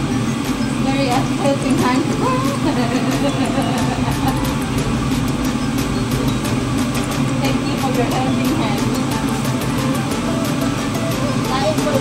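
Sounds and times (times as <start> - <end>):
range hood fan humming: 0.0 - 12.0.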